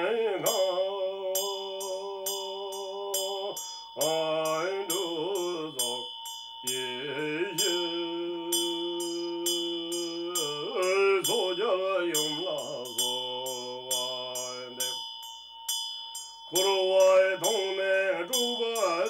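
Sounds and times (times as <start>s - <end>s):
man chanting: 0.0s - 6.1s, 6.7s - 15.0s, 16.5s - 19.0s
hand bell ringing: 0.0s - 19.0s.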